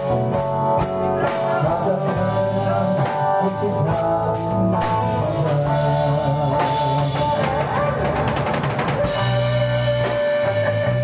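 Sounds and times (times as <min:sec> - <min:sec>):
drum kit: 0:00.0 - 0:11.0
electric guitar: 0:00.0 - 0:11.0.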